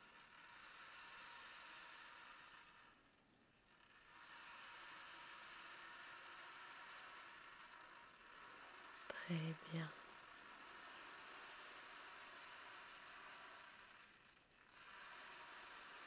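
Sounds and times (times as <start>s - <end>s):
ocean drum beads rolling: 0.0s - 3.0s, 3.6s - 9.2s, 10.0s - 16.0s.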